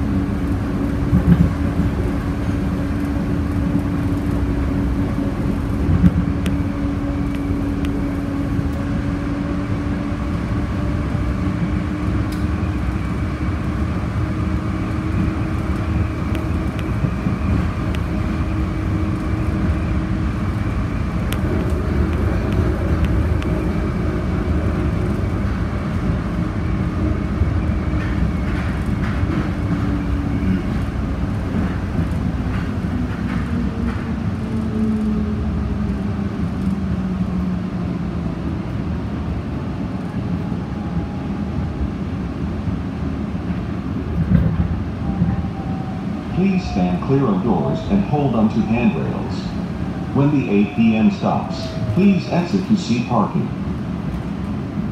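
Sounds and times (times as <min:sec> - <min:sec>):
tram rumble: 0:00.0 - 0:54.9.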